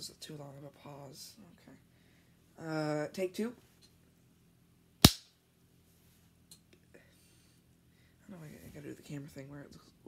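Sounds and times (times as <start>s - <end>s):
sharp clap-like impact: 5.0s - 5.3s.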